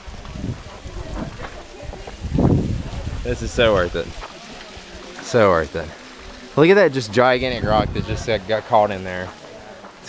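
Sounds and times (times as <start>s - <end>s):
wind buffeting microphone: 0.0s - 5.0s, 7.2s - 8.6s
people's voices: 0.0s - 10.0s
waterfall rushing: 0.0s - 10.0s.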